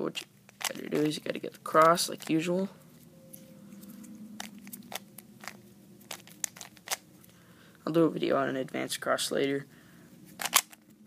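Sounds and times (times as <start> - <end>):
puzzle cube clicking: 3.8 - 7.1, 10.4 - 10.9.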